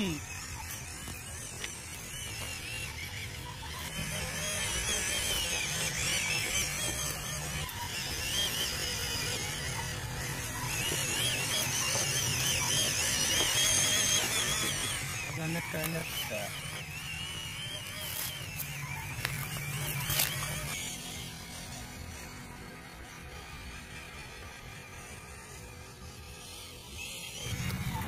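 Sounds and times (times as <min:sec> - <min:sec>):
toy car electric motor whine: 0:00.0 - 0:28.0.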